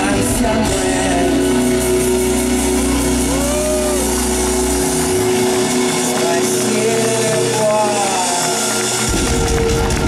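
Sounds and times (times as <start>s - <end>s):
low bass drone: 0.0s - 10.0s
rock band playing chords: 0.0s - 10.0s.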